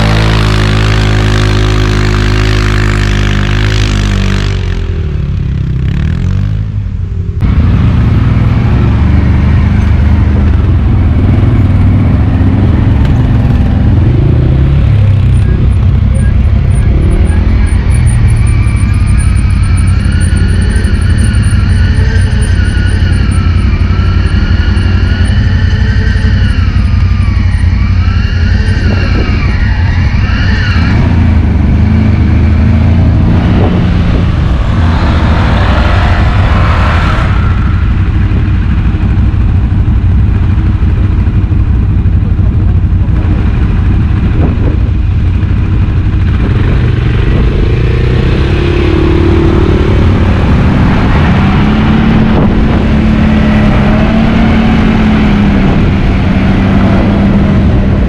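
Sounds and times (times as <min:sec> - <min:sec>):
engine whine: 0:00.0 - 0:58.0
quad bike engines rumbling: 0:00.0 - 0:58.0.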